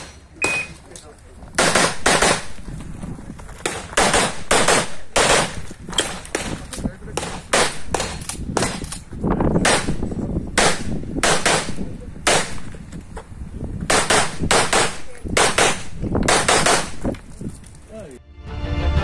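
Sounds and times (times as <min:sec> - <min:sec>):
pistol shots in quick pairs: 0:01.6 - 0:02.6, 0:03.6 - 0:09.0, 0:09.6 - 0:12.6, 0:13.9 - 0:17.0.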